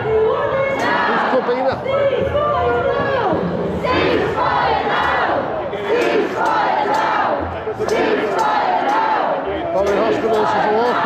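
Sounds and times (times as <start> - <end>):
crowd chanting and shouting: 0.0 - 11.0.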